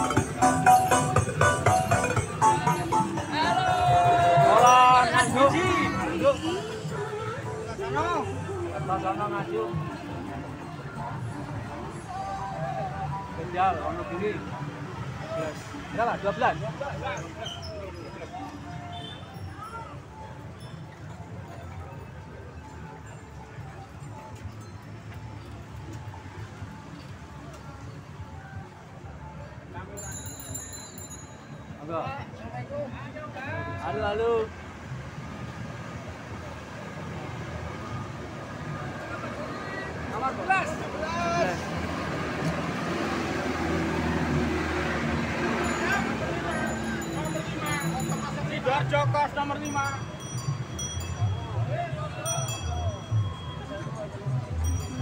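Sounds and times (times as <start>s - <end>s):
steady low street rumble: 0.0s - 55.0s
bicycle bells ringing: 29.9s - 32.0s, 45.1s - 55.0s.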